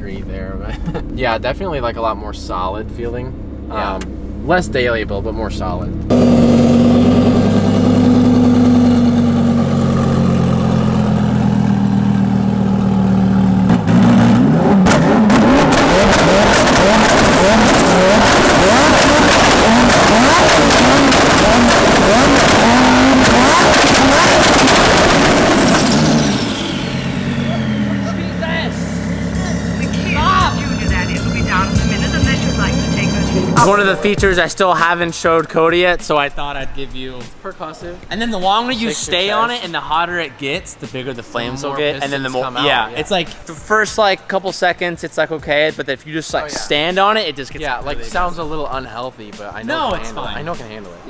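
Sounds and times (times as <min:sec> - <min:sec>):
exhaust crackling and popping: 0:00.0 - 0:38.6
sports car engine revving: 0:00.2 - 0:33.8.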